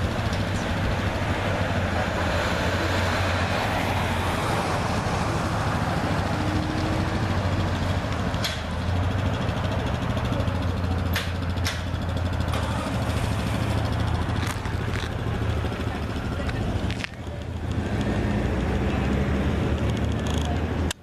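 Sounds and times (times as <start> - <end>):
traffic rumble of motors and tyres: 0.0 - 21.0.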